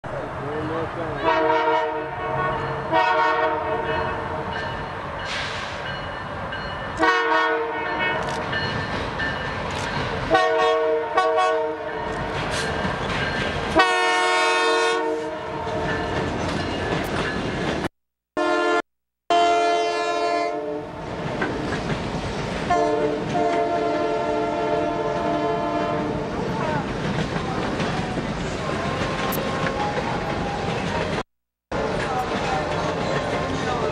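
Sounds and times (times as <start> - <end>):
train cars rumbling on rails: 0.0 - 17.9, 20.9 - 33.9
locomotive air horn blasts: 1.2 - 4.0, 7.0 - 8.2, 10.3 - 12.0, 13.8 - 15.9, 18.4 - 20.9, 22.7 - 26.2.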